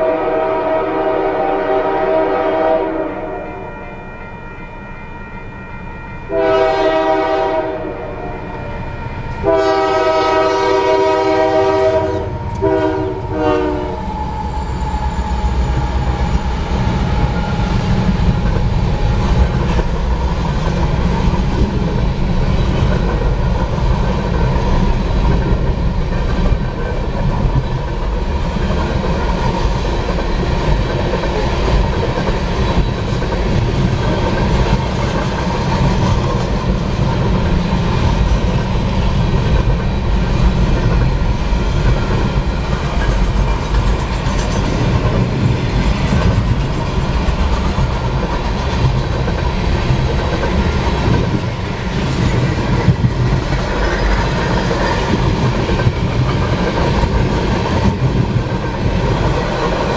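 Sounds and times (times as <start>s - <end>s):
locomotive horn blasts: 0.0s - 4.0s, 6.3s - 14.1s
freight cars rumbling and clattering: 14.0s - 59.9s.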